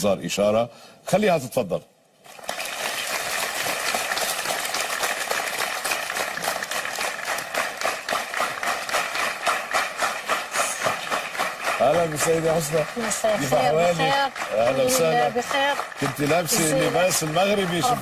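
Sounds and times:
audience clapping: 2.2 - 18.0.

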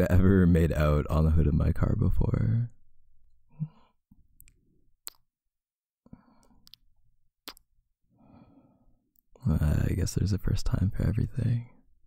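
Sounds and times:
mouth clicks: 4.4 - 5.3, 7.4 - 7.7.

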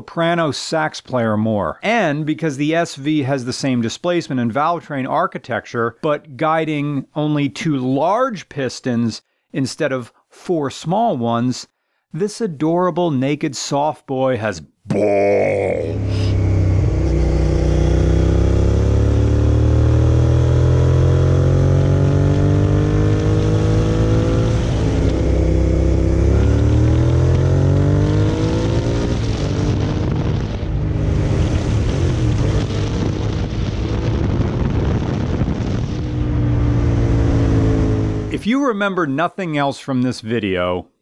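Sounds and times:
motorcycle engine accelerating: 15.8 - 38.4.

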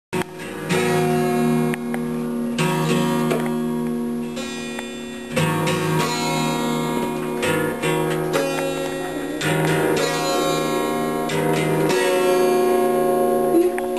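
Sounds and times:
acoustic guitar strums: 0.2 - 13.9.

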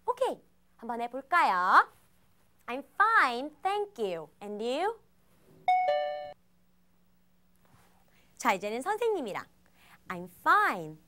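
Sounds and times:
two-note ding-dong chime: 5.7 - 6.4.

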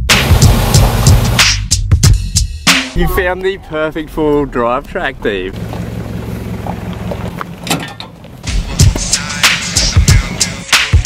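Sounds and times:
hip-hop music with heavy drum beat: 0.0 - 3.3, 8.5 - 11.0
vehicle engine humming: 3.0 - 10.7.

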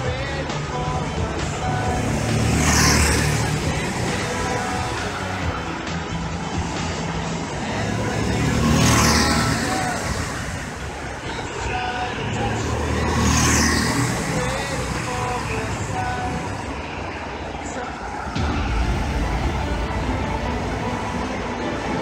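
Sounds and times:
go-kart engines passing: 0.0 - 22.0.

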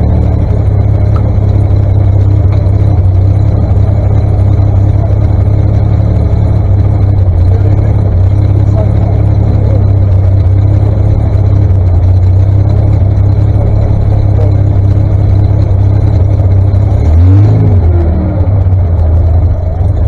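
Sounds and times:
engine idling and revving: 0.0 - 20.0.

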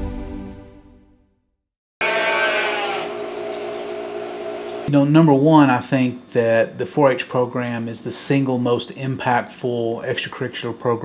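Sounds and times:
lamb bleating: 2.0 - 4.0.

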